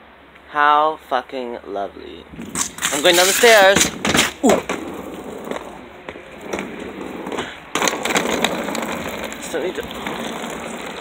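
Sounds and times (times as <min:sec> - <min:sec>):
suitcase wheels rolling over concrete: 0:02.3 - 0:11.0.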